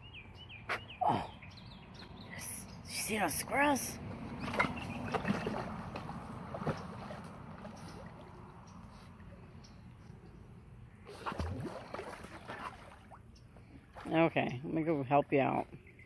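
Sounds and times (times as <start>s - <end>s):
pool water lapping and splashing: 4.3s - 15.1s.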